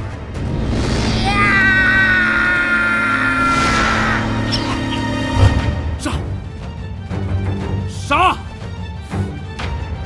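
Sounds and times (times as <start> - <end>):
tense ominous film score: 0.0 - 10.0
man screaming battle cry: 1.2 - 4.7.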